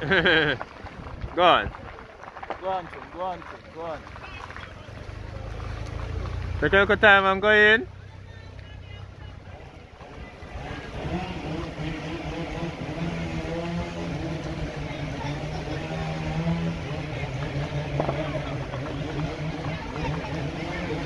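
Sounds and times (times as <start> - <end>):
vehicle engine running: 0.0 - 21.0.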